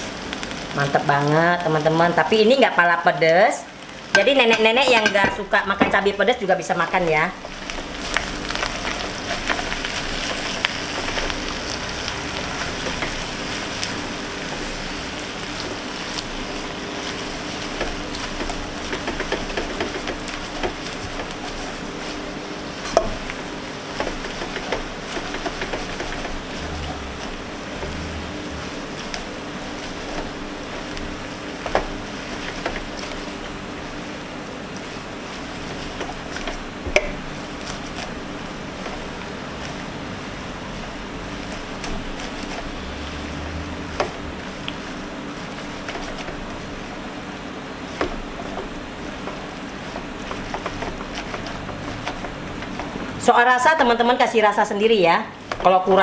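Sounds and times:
food sizzling in a wok: 0.0 - 56.0.

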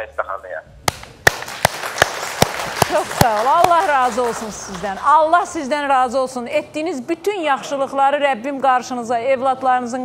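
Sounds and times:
loud close hand claps: 0.9 - 5.1
studio audience applauding: 1.3 - 5.2.

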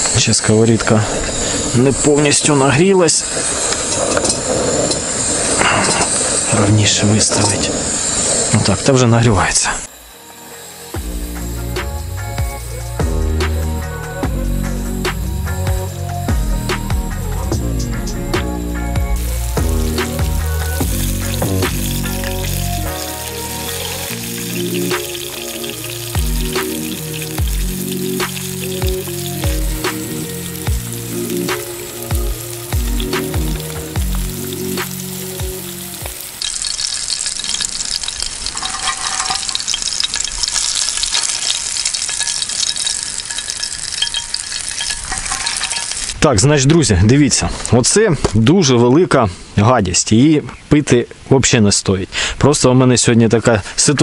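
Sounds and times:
food frying in hot oil: 0.0 - 9.1, 18.0 - 46.2
background music with steady beat: 10.2 - 36.2.

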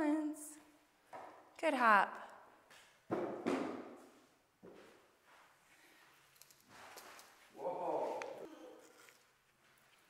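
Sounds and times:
shuffling steps: 3.9 - 10.0.

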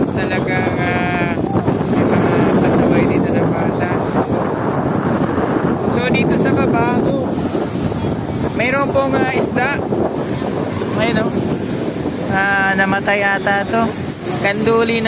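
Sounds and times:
surf breaking on shore: 0.0 - 15.0
wind buffeting microphone: 0.0 - 15.0.

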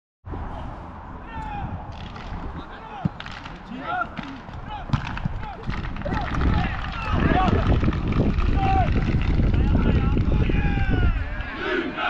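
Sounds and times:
wind rumble on microphone: 0.3 - 3.0, 4.4 - 12.0
distant voices shouting: 2.6 - 12.0.

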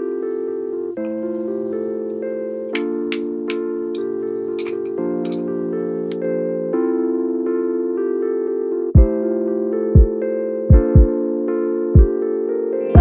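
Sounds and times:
electric piano music: 0.0 - 13.0
hammer tapping on stone: 2.8 - 5.4.

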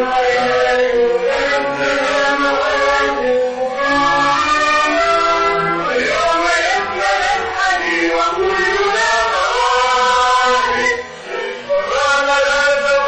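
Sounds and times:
vocal trio singing: 0.0 - 13.0.

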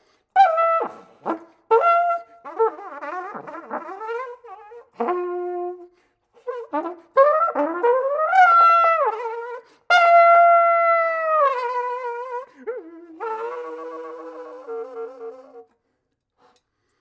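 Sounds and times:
flugelhorn playing: 0.4 - 15.7.

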